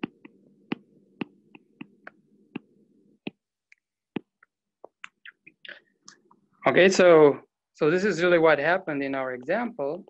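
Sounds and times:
stylus tapping on glass screen: 0.0s - 5.5s.

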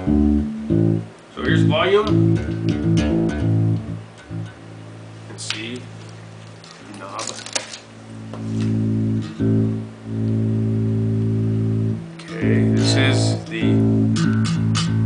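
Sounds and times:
bass guitar low notes: 0.0s - 15.0s.

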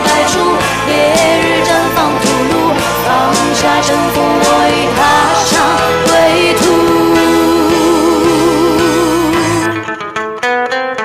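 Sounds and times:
band with steady drum beat: 0.0s - 9.7s
woman singing pop song: 0.0s - 9.9s.

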